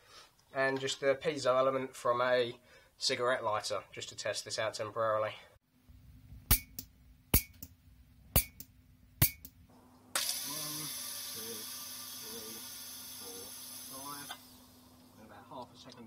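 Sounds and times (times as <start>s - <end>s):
steady hiss: 9.7s - 15.6s.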